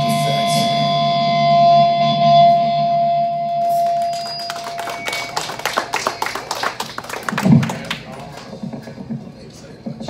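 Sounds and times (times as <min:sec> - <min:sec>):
audience clapping: 0:03.6 - 0:09.1.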